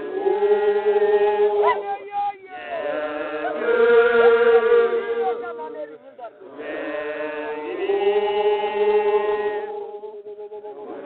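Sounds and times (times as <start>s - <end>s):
group of voices chanting: 0.0s - 10.0s.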